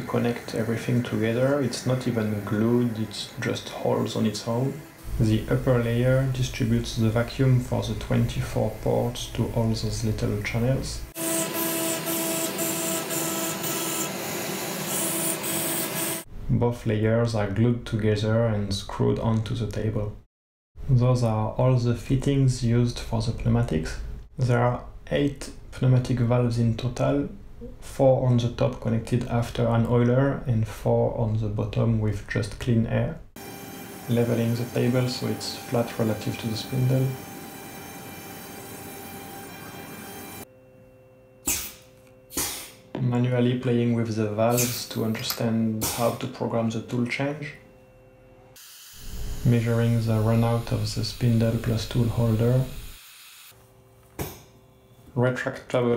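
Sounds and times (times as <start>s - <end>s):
router spindle running: 11.2s - 16.2s, 33.4s - 40.4s
hiss of milling cut: 33.4s - 40.4s, 44.5s - 45.0s, 48.6s - 53.5s
spindle whine: 33.4s - 45.6s
compressed air hiss: 41.5s - 42.9s, 44.5s - 45.0s, 45.8s - 46.2s, 48.6s - 53.5s.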